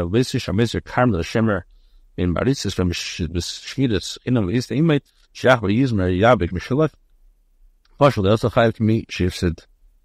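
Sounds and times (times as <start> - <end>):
man speaking: 0.0 - 7.0, 7.9 - 9.7.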